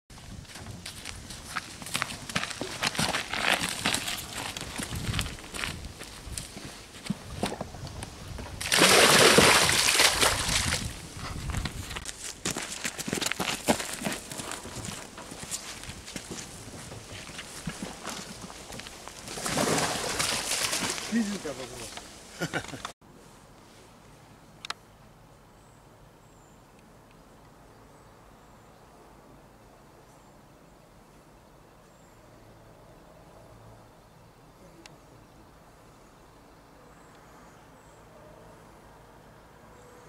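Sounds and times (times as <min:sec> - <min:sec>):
footsteps: 0:00.1 - 0:08.6, 0:09.7 - 0:22.1
water splashing pour: 0:08.6 - 0:10.9.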